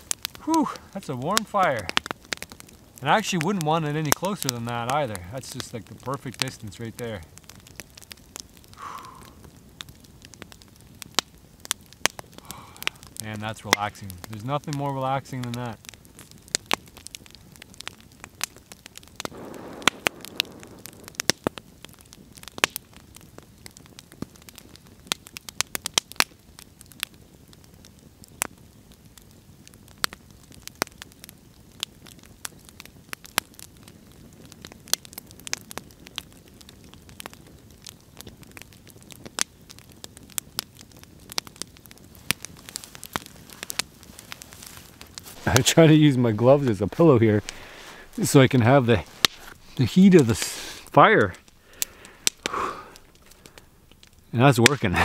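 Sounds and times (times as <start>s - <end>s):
campfire crackling and popping: 0.0s - 55.0s.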